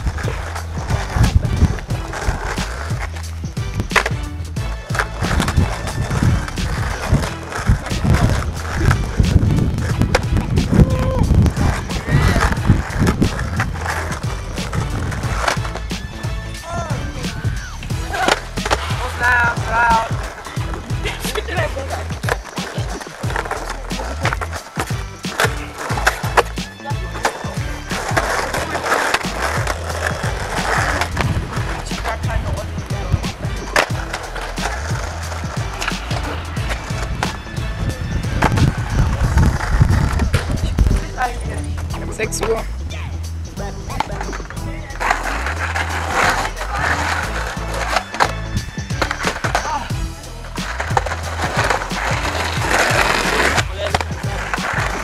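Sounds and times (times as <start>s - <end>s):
skateboard clacking on road: 0.0s - 42.6s, 43.9s - 55.0s
skateboard rolling on asphalt: 0.0s - 42.6s, 43.4s - 55.0s
young voices: 10.6s - 12.9s, 16.5s - 31.1s.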